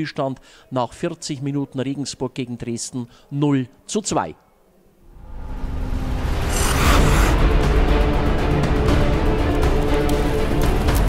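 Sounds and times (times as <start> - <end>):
rising whoosh: 5.1 - 8.0
heavy bass: 5.2 - 8.5
logo theme music: 5.2 - 10.7.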